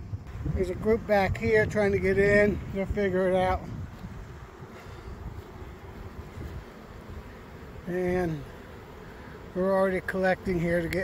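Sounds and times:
wind rumbling on microphone: 0.0s - 7.3s
bees buzzing: 0.0s - 11.0s.

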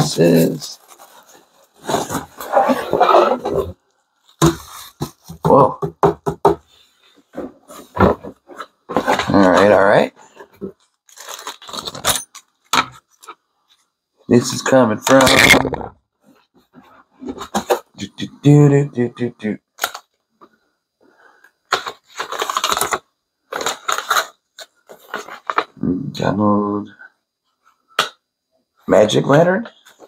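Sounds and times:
packaging rustling and clattering: 10.5s - 13.3s, 21.7s - 25.8s.

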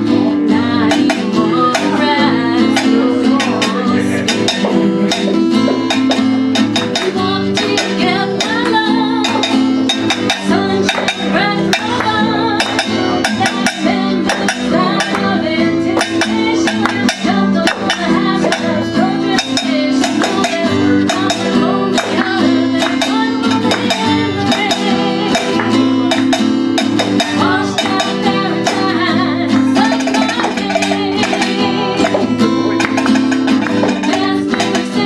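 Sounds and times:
acoustic guitar strumming: 0.0s - 35.0s
person singing: 0.0s - 35.0s.

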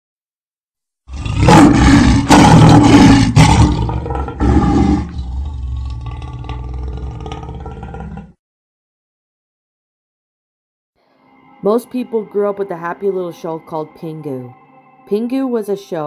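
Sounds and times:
lion roaring: 1.1s - 8.4s.

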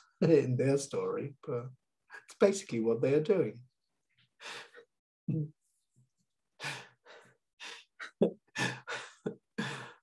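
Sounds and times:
man laughing softly: 8.0s - 10.0s.

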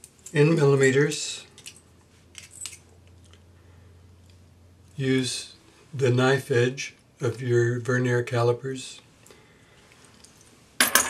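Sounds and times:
metal tools clinking: 1.5s - 3.2s, 10.1s - 11.0s.

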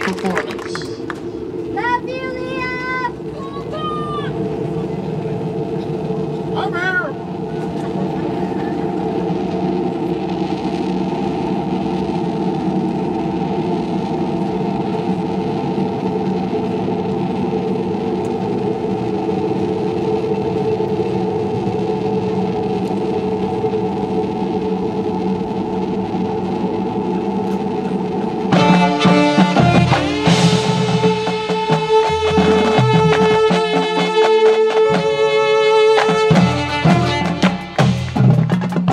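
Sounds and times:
sustained chord: 0.0s - 38.2s
gliding tone: 0.0s - 38.3s.

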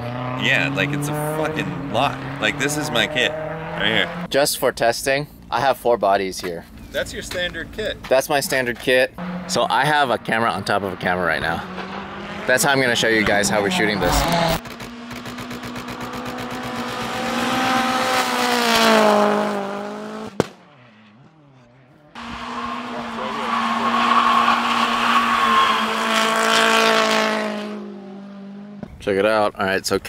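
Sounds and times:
rally car engine at high revs: 0.0s - 4.3s, 9.2s - 28.9s.

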